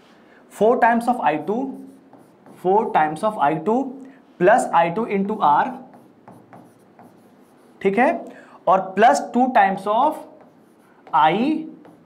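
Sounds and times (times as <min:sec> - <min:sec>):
pen tapping and scratching on screen: 0:01.8 - 0:02.9, 0:05.8 - 0:07.8, 0:10.1 - 0:12.0.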